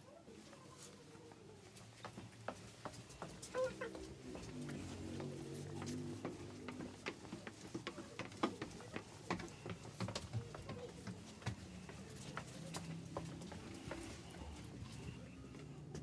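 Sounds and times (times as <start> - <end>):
footsteps on wooden stairs: 1.7 - 15.1.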